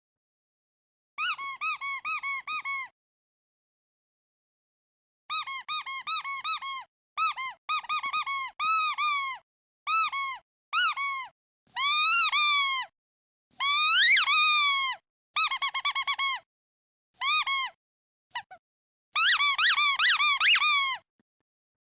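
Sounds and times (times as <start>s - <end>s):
rubber duck squeaking: 1.2s - 2.9s, 5.3s - 12.9s, 13.6s - 16.4s, 17.2s - 18.6s, 19.2s - 21.0s.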